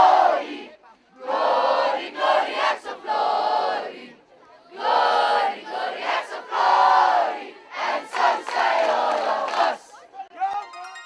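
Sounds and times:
crowd shouting in unison: 0.0 - 4.1, 4.7 - 9.9.

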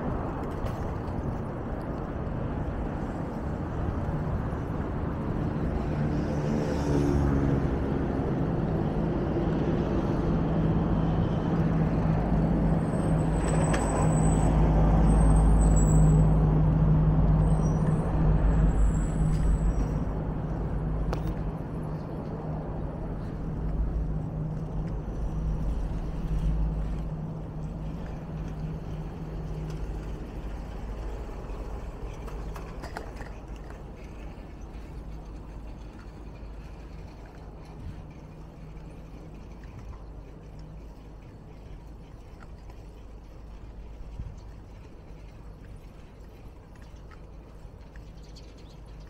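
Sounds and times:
traffic noise: 0.0 - 49.0
brake squeals: 12.4 - 22.0.

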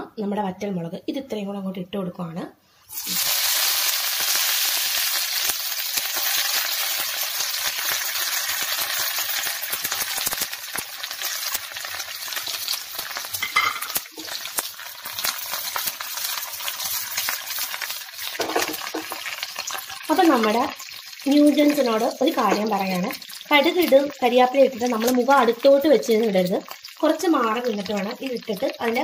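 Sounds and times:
hot oil sizzling and crackling: 2.8 - 29.0.

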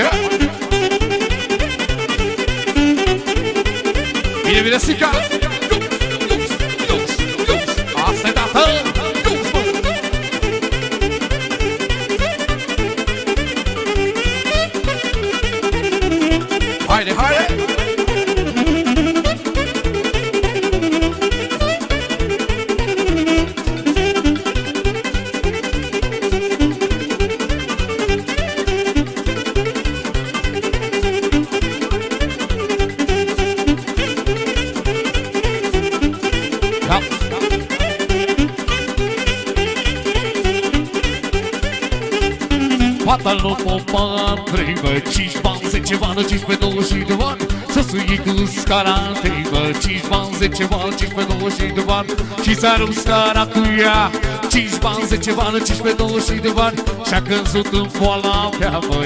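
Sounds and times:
wavering lead melody: 0.0 - 25.2, 30.6 - 43.1
folk dance band music: 0.0 - 59.0
keyboard bass and chords: 0.0 - 59.0.

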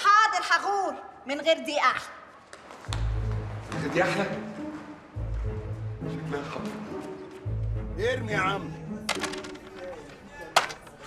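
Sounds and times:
game pieces clacking on board: 9.1 - 11.0.

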